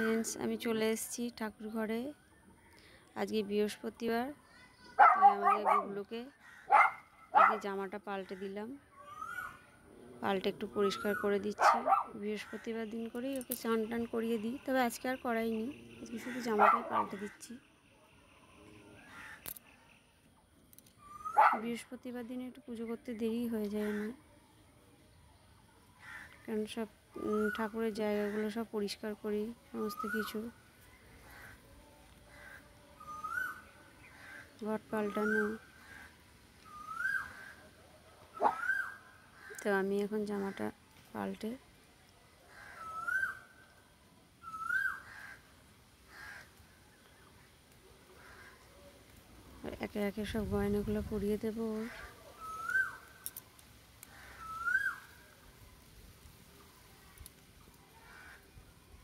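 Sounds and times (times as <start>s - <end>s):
dog barking: 5.0s - 6.0s, 6.7s - 7.6s, 11.6s - 12.2s, 16.6s - 17.1s, 21.4s - 21.6s, 38.4s - 38.8s
dog yip: 5.0s - 6.0s, 6.7s - 7.6s, 11.6s - 12.1s, 21.2s - 21.6s, 38.4s - 39.0s
bird whistled call: 9.0s - 9.6s, 21.0s - 21.6s, 33.0s - 33.7s, 36.6s - 37.5s, 38.3s - 39.1s, 42.8s - 43.5s, 44.4s - 45.1s, 52.4s - 53.1s, 54.3s - 55.1s.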